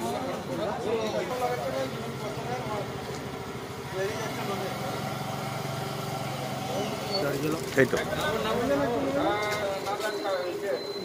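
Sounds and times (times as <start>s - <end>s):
voices talking: 0.0s - 11.0s
scooter engine idling: 1.8s - 9.4s.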